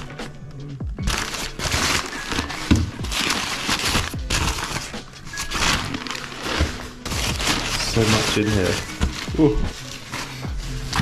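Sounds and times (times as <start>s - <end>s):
packing paper crinkling and rustling: 1.0s - 11.0s.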